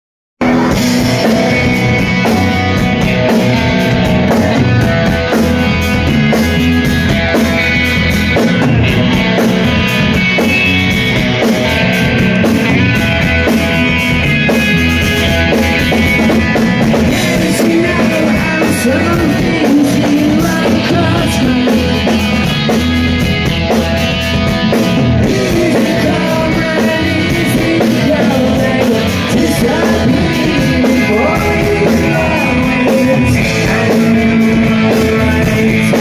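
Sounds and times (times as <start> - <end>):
live rock band playing: 0.4 - 36.0
lead vocal singing: 16.9 - 22.6, 25.2 - 36.0.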